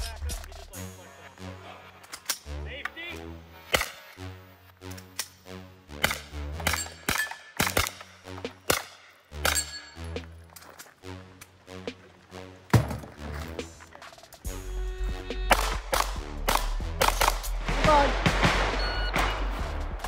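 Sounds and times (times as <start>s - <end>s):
music with a steady beat: 0.0s - 1.4s, 12.8s - 20.0s
gunshots: 3.6s - 4.2s, 5.9s - 9.8s, 15.5s - 20.0s.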